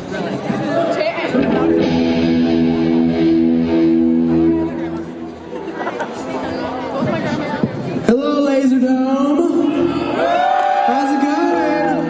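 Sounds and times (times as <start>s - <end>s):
audience chatter: 0.0s - 12.0s
electric guitar chord ringing: 1.3s - 5.8s.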